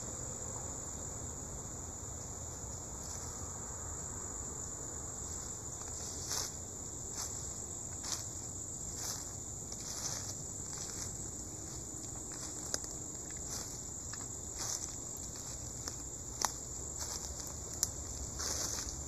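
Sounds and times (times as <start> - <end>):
insects chirping: 0.0 - 19.0
footsteps in dry leaves: 5.7 - 19.0.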